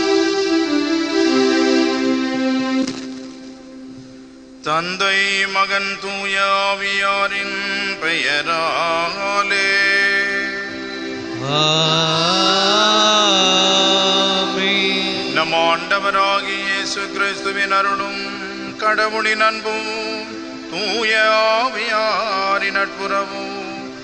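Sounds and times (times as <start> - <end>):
held keyboard notes: 0.0 - 24.0
person singing a sacred chant: 4.7 - 24.0.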